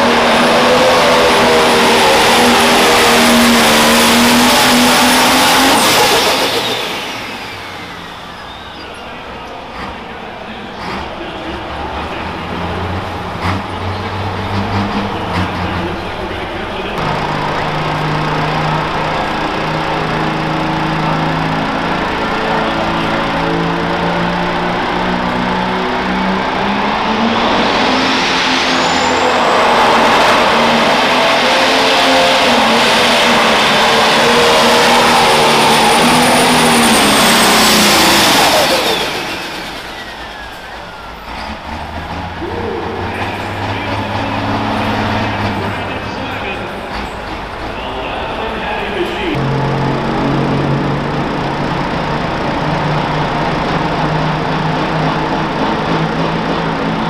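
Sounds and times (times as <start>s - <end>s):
diesel engine revving: 0.0s - 57.0s
high turbo whine: 0.0s - 57.0s.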